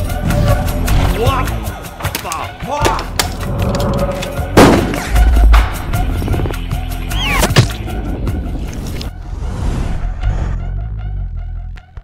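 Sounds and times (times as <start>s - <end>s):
dark music drone: 3.2s - 9.4s.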